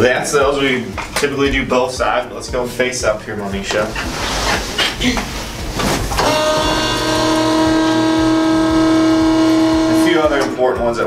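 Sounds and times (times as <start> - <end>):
steady hum: 0.0 - 11.0
rustling on padded table: 3.5 - 6.2.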